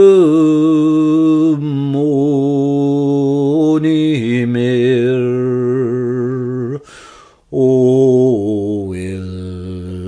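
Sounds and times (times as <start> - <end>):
man singing unaccompanied: 0.0 - 10.0.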